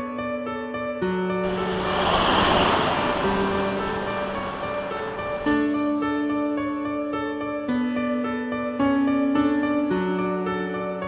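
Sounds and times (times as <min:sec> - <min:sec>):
rushing noise: 0:01.4 - 0:05.6.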